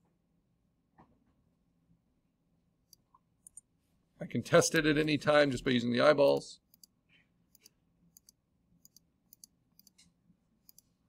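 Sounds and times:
computer mouse clicks: 6.7s - 11.0s.

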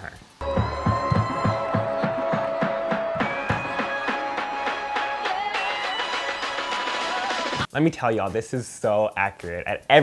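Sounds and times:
dance music with steady beat: 0.4s - 7.7s.

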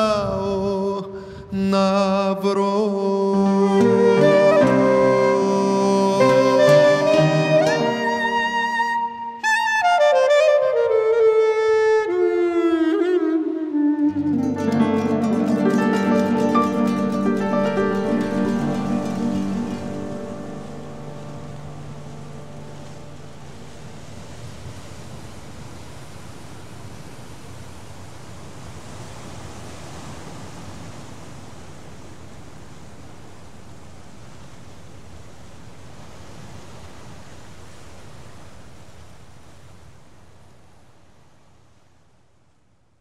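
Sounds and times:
waves breaking on shore: 0.0s - 42.4s
music: 3.3s - 23.4s.

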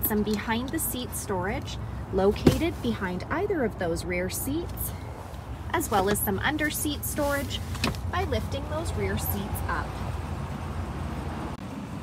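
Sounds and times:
low background rumble with hiss: 0.0s - 11.3s.

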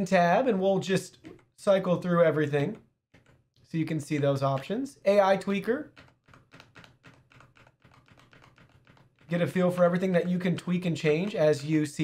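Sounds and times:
keyboard key presses: 3.1s - 4.7s, 5.9s - 10.2s.

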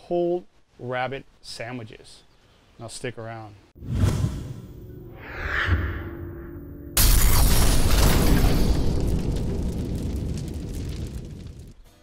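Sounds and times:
explosion with deep rumble: 7.0s - 11.8s.

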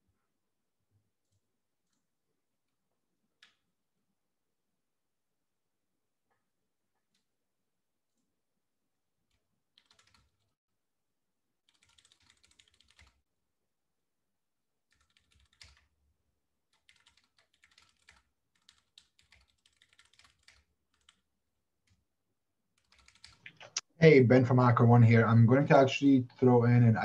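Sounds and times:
faint keyboard typing: 9.3s - 10.5s, 11.6s - 13.2s, 14.9s - 16.0s, 16.7s - 22.0s, 22.7s - 23.9s.

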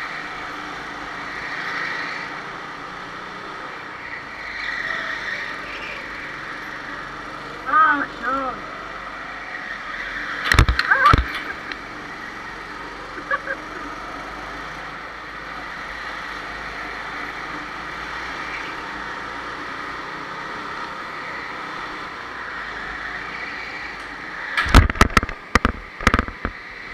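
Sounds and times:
go-kart engine running: 0.0s - 26.9s
sharp knocks: 10.4s - 11.5s, 24.6s - 26.6s.

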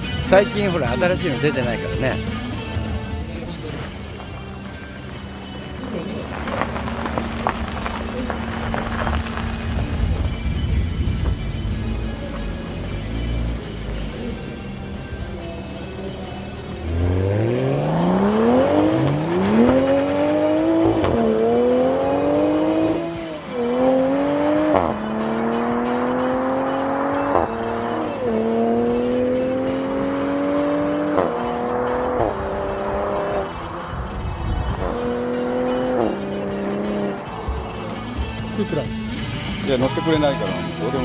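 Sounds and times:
engine upshifts: 1.8s - 41.0s
car engine accelerating: 2.0s - 41.0s.

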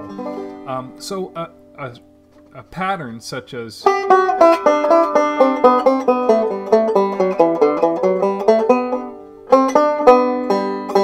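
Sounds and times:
banjo picking single notes: 0.0s - 2.8s, 3.8s - 11.0s.

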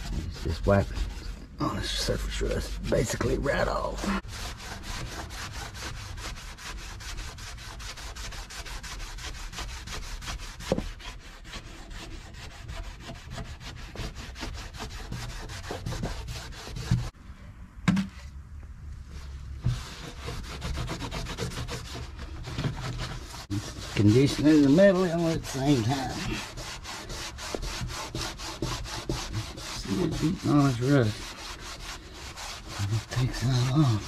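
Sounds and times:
rag rubbing on steel: 0.0s - 17.1s, 19.6s - 34.0s.

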